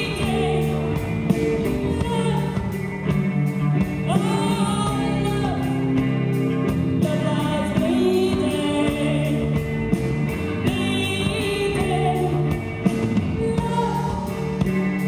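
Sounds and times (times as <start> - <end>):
woman singing: 0.0 - 2.8, 4.0 - 6.0, 6.9 - 9.7, 10.5 - 14.8
live rock band playing: 0.0 - 15.0.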